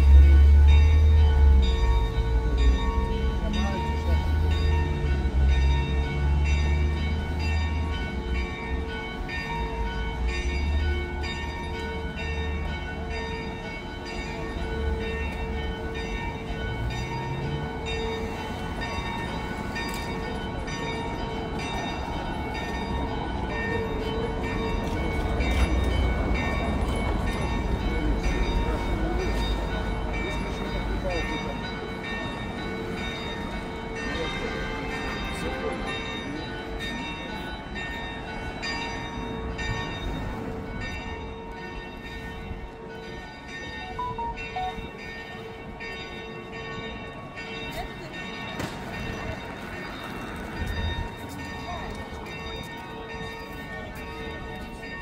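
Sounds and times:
church bells ringing: 0.0 - 55.0
people chattering: 12.2 - 38.9, 43.8 - 55.0.

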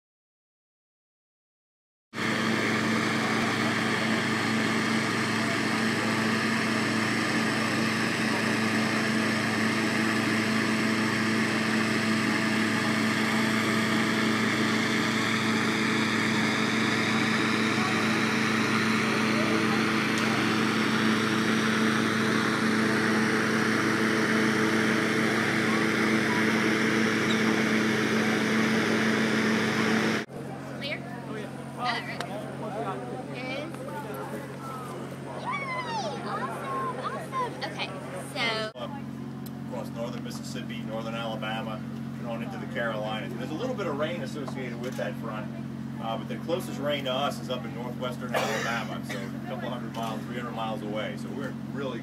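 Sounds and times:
inflator fan engine hum: 2.2 - 52.0.

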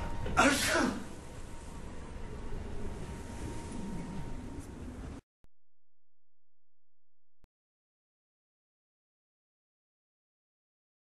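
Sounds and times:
man sneezing: 0.4 - 1.1.

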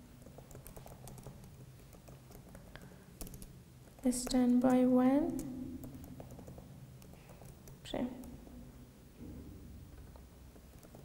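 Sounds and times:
typing on computer keyboard: 0.2 - 8.4, 10.6 - 11.0.

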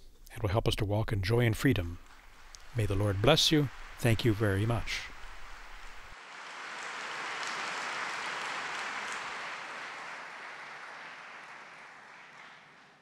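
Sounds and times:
large audience applauding: 2.0 - 13.0.

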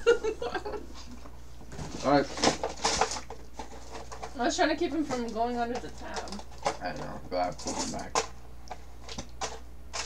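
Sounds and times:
rustling wrappers and cardboard: 1.7 - 4.4.

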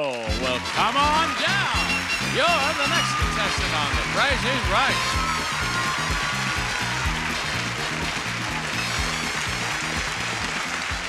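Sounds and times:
audience cheering and applauding: 0.0 - 11.0
upbeat game show music: 0.0 - 11.0.

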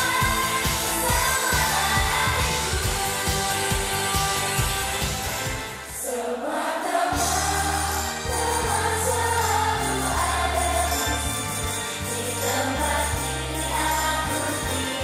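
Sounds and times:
backing track drum beat: 0.0 - 5.8
women singing pop song: 0.0 - 15.0.

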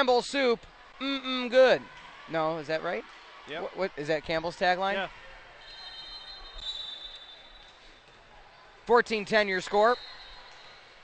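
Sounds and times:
indoor gym ambience: 0.0 - 11.0.

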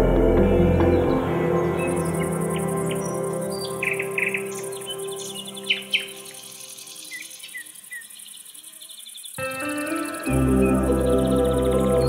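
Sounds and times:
soft ambient music: 0.0 - 7.7, 9.4 - 12.0
birds chirping: 0.0 - 12.0
high insect trill: 0.0 - 12.0.

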